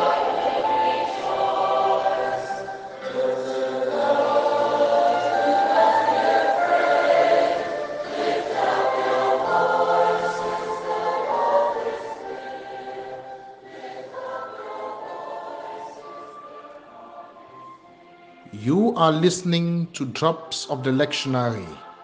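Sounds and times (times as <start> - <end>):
choir singing sustained notes: 0.0 - 19.6, 20.3 - 22.0.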